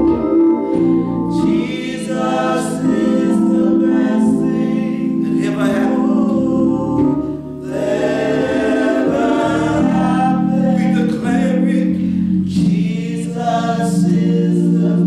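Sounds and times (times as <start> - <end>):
gospel singing voices: 0.0 - 15.0
sustained accompaniment chords: 0.0 - 15.0.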